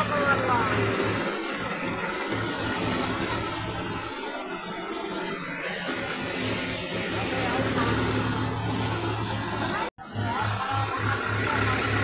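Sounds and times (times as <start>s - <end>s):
hulling machine engine drone: 0.0s - 12.0s.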